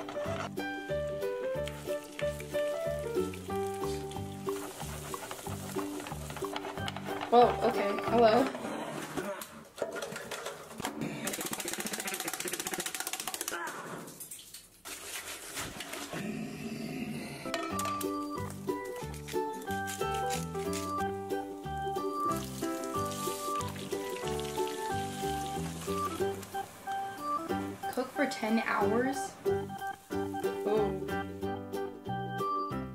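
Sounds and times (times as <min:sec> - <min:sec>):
background music with held notes: 0:00.0 - 0:08.6, 0:17.5 - 0:32.9.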